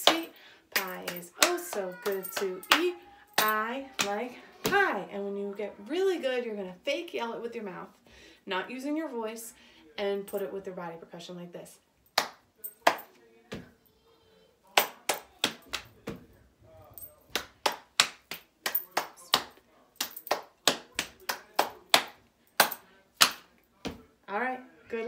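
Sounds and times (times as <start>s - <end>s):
hand claps: 0.0s - 4.2s, 12.2s - 13.1s, 14.8s - 16.2s, 17.3s - 24.0s.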